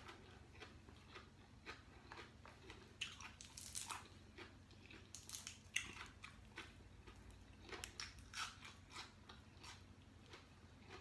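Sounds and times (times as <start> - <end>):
person chewing raw greens: 0.0 - 11.0.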